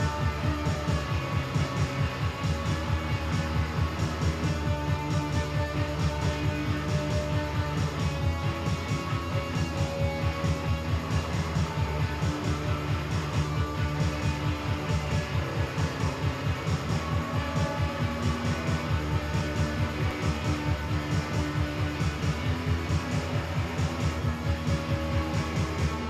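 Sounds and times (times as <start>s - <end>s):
live band with guitar: 0.0s - 26.0s
pulsing low beat: 0.0s - 26.0s.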